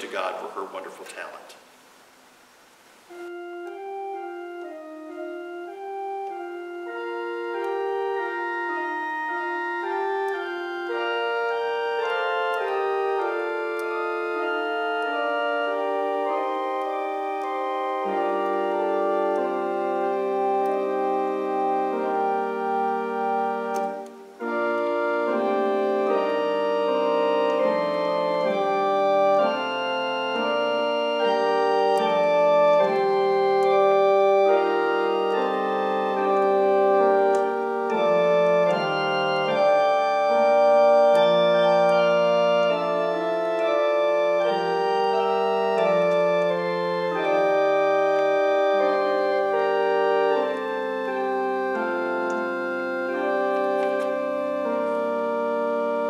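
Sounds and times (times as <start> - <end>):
church organ playing chords: 0.0 - 1.6, 3.0 - 56.0.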